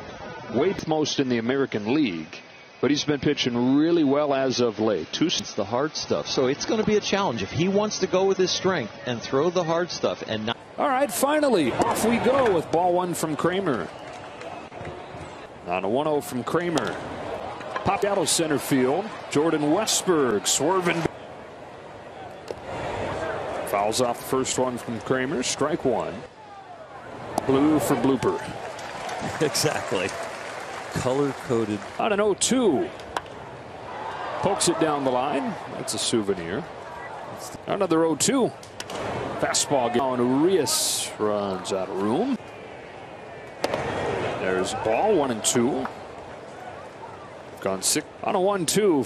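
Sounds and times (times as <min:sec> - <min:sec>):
crowd murmur: 0:10.6 - 0:37.7, 0:38.5 - 0:48.2
baseball smacking into mitt: 0:43.6 - 0:43.9
bat cracking on ball: 0:43.6 - 0:44.0.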